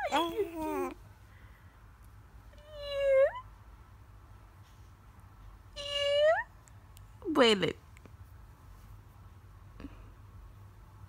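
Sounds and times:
infant cooing: 0.0 - 1.0.

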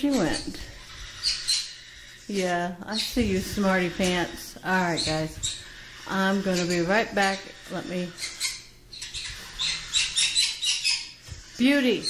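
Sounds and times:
parrot high-pitched chirps: 0.0 - 4.0, 4.6 - 12.0.

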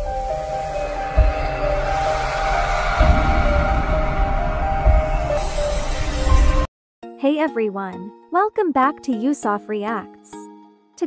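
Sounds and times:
deep bass hit: 0.0 - 6.7
held synth notes: 0.0 - 6.7
rising whoosh: 0.0 - 6.7.

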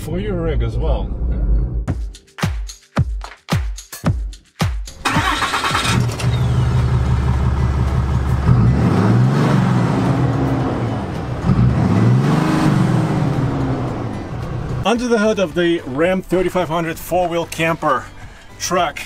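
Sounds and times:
diesel engine starting and revving: 4.9 - 15.0.

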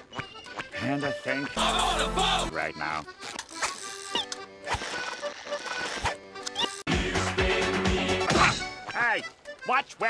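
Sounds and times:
light cartoon music: 0.0 - 10.0.

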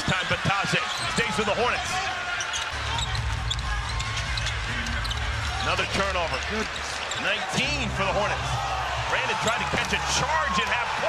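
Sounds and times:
crowd noise: 0.0 - 11.0
sneaker squeaks: 0.7 - 1.7, 2.3 - 5.8, 6.4 - 7.4.

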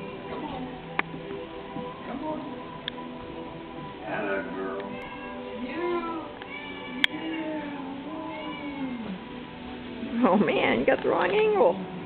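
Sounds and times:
cat meowing: 4.2 - 9.2.

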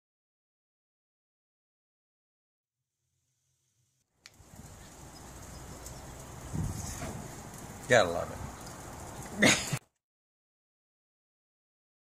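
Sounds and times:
wind rumble on microphone: 4.4 - 9.4.

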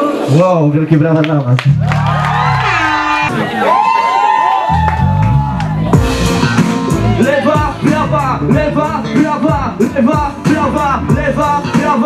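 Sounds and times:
deep bass line: 1.6 - 3.5, 4.7 - 12.0
crowd cheering: 1.6 - 8.0
rap backing track over pa: 5.2 - 12.0.

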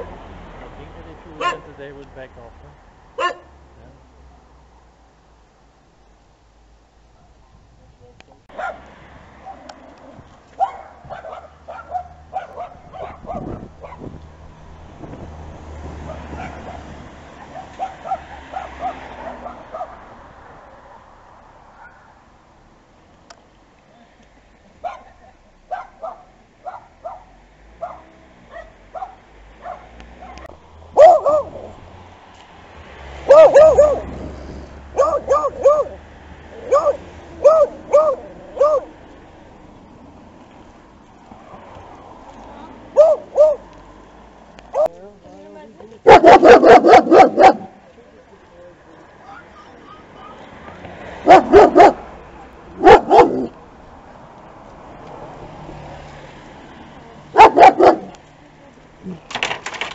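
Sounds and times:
dog barking: 1.4 - 1.7, 3.2 - 3.6, 8.5 - 9.8, 10.6 - 14.1, 16.0 - 20.1, 21.7 - 22.2, 24.8 - 31.7, 33.2 - 34.1, 34.9 - 36.0, 36.6 - 38.9, 42.9 - 43.7, 44.7 - 45.0, 46.0 - 47.8, 51.2 - 52.1, 52.8 - 53.6, 57.3 - 58.2.

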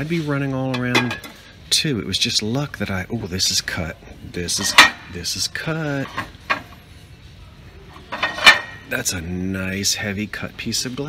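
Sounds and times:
glassware clattering: 0.8 - 1.4, 4.6 - 5.1, 8.1 - 8.9.

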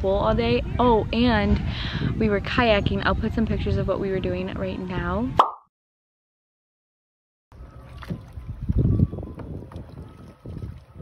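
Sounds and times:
wind buffeting microphone: 0.0 - 5.4, 7.6 - 11.0
kayak paddle splashing and knocking: 7.6 - 11.0.

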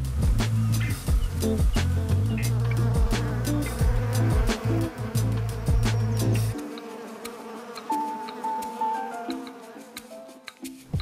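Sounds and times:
background music with bass beat: 0.0 - 6.6
bees buzzing: 0.3 - 11.0.

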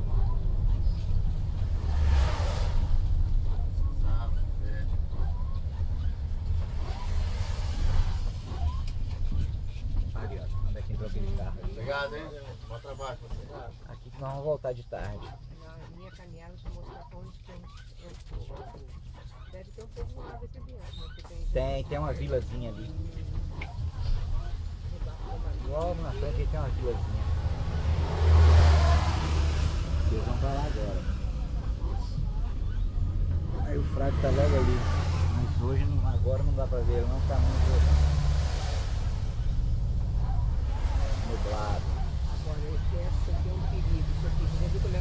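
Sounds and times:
bus engine low rumble: 0.0 - 45.0
indistinct talking: 2.8 - 45.0.

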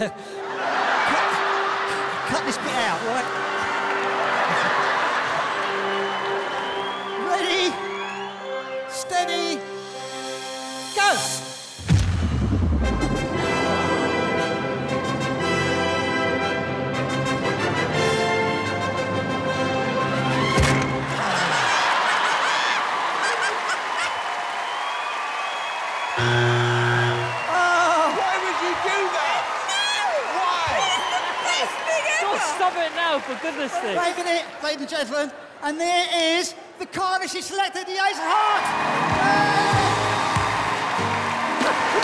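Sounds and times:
dramatic music: 0.4 - 21.6.

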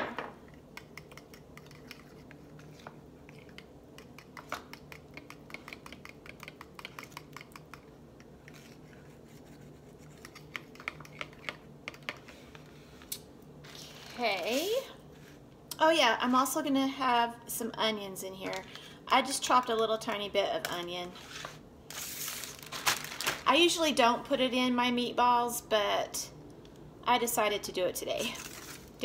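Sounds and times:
fork whisking sauce in bowl: 0.8 - 12.3.

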